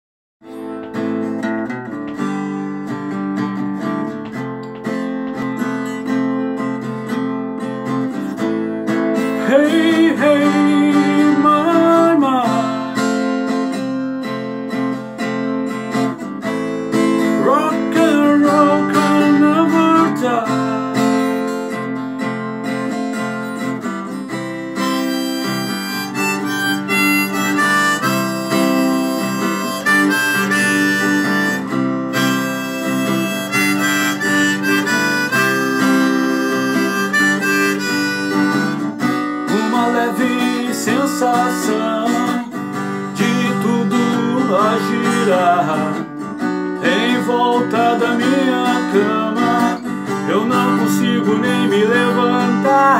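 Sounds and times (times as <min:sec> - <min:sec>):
harmonica melody: 0:00.4 - 0:52.9
strummed acoustic guitar: 0:00.4 - 0:52.9.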